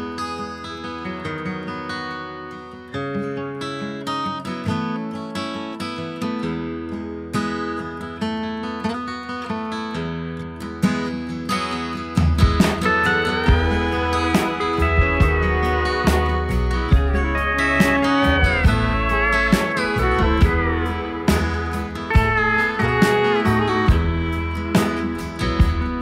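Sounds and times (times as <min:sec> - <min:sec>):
acoustic guitar strumming: 0:00.0 - 0:26.0
upright bass: 0:12.2 - 0:26.0
pedal steel guitar gliding notes: 0:12.7 - 0:26.0.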